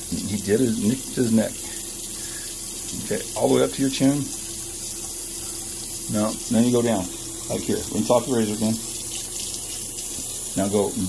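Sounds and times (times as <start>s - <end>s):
faucet running into sink: 0.0s - 11.0s.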